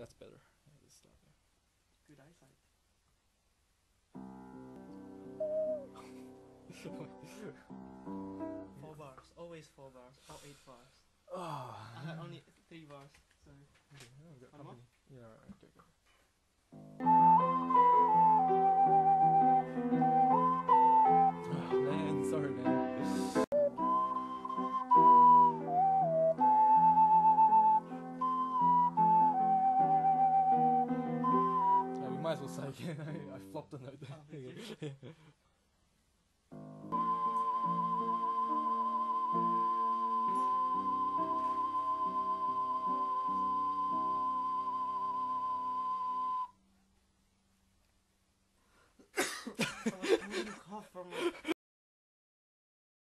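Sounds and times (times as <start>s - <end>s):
ocarina melody: 4.8s - 7.0s, 17.0s - 32.6s, 36.9s - 46.6s
ocarina long high note: 5.4s - 6.2s, 36.9s - 46.5s
laughter: 6.0s - 7.6s, 32.8s - 33.4s, 34.0s - 35.4s, 49.1s - 51.6s.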